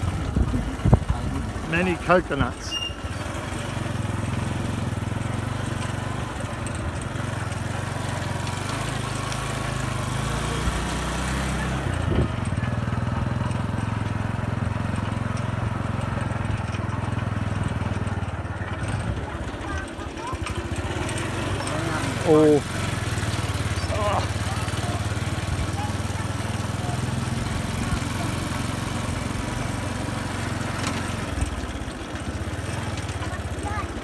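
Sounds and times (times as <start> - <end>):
small motorcycle engine running: 0.0 - 34.0.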